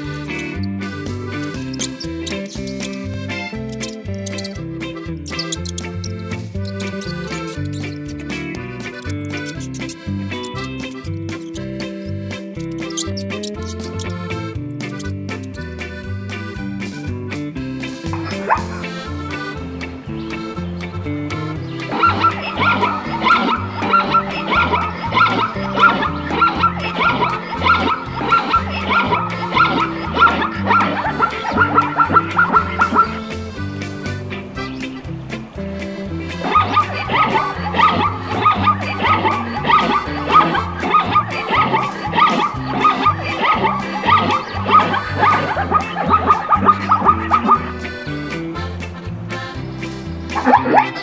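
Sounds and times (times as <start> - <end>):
zebra yelping barks: 0.0 - 16.0, 18.1 - 48.7, 50.3 - 51.0
background music with steady beat: 0.0 - 51.0.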